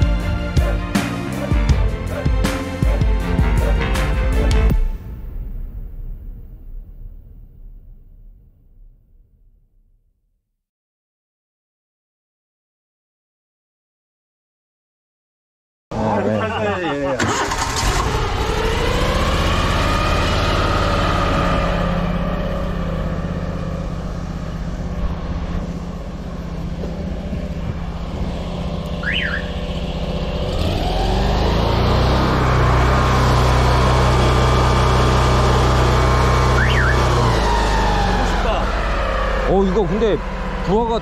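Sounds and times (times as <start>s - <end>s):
sewer jetter engine running: 0.0s - 4.9s, 16.1s - 41.0s.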